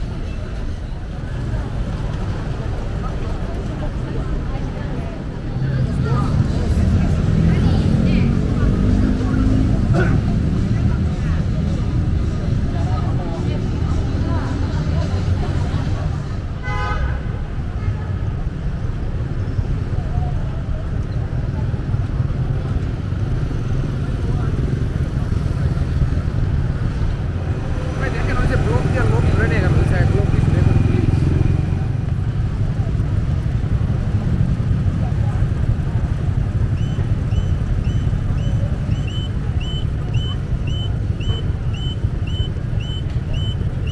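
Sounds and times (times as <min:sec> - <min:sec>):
rumble of passing cars: 0:00.0 - 0:43.9
voices of passersby: 0:00.0 - 0:43.9
car horn toot: 0:16.6 - 0:17.3.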